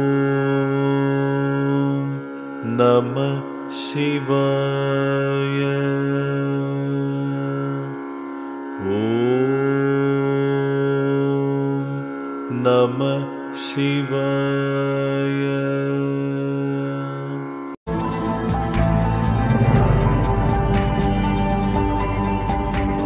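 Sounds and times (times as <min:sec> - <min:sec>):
person chanting in long tones: 0:00.0 - 0:08.1, 0:08.8 - 0:17.6
music: 0:00.0 - 0:23.0.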